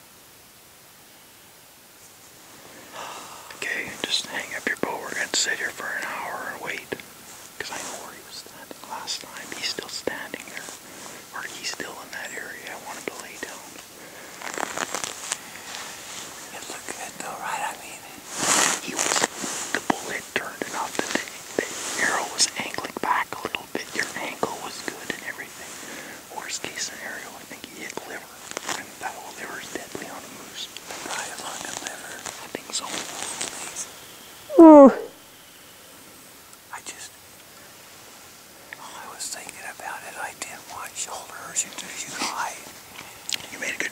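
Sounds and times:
people whispering: 2.8s - 7.0s, 7.6s - 33.9s, 34.5s - 35.2s, 36.7s - 37.2s, 38.7s - 43.9s.

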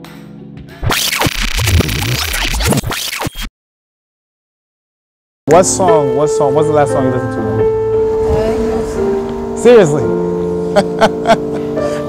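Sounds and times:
turntable scratching: 0.8s - 3.5s
low bass: 7.5s - 11.6s.

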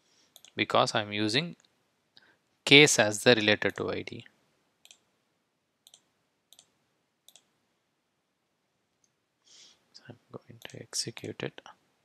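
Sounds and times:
computer mouse clicks: 0.4s - 0.6s, 4.8s - 5.1s, 5.8s - 7.5s.

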